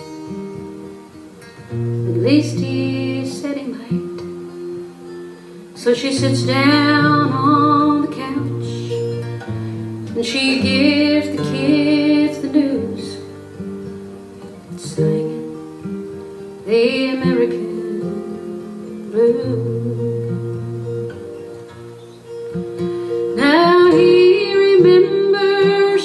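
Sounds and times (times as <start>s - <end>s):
acoustic guitar: 0.0s - 26.0s
woman singing with vibrato: 2.0s - 4.8s, 5.7s - 9.3s, 10.1s - 13.5s, 14.6s - 15.9s, 16.6s - 21.0s, 23.3s - 26.0s.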